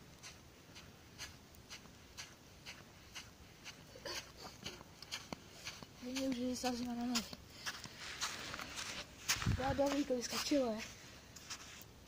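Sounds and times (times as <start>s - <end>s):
footsteps scuffing: 0.2s - 11.9s.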